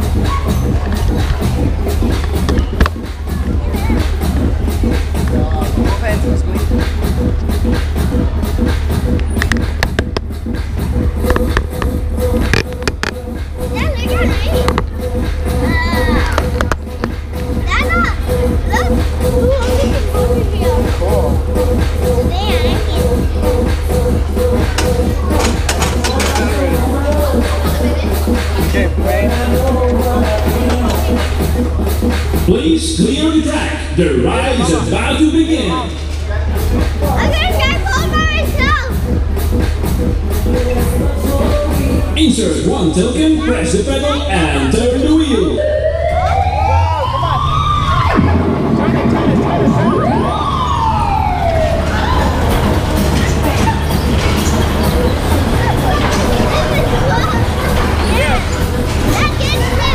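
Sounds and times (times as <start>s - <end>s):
loud background music: 0.0s - 59.9s
voices: 0.0s - 59.9s
wailing siren: 45.1s - 53.0s.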